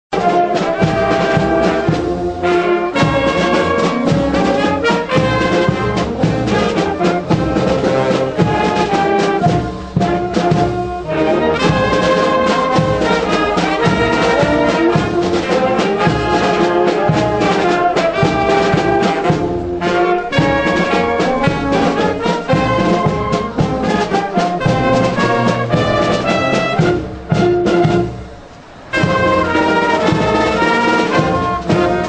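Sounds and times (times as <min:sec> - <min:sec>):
brass music: 0:00.1 - 0:32.0.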